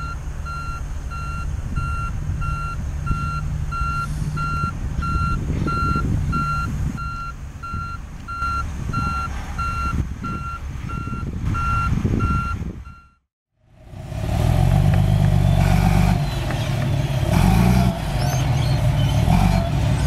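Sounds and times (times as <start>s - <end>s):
reversing alarm beeping: 0.0s - 13.2s
diesel engines rumbling: 0.0s - 20.0s.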